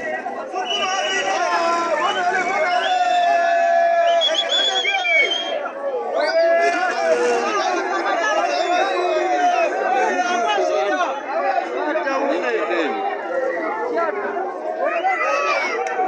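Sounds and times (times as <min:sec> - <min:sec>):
crowd shouting: 0:00.0 - 0:16.0.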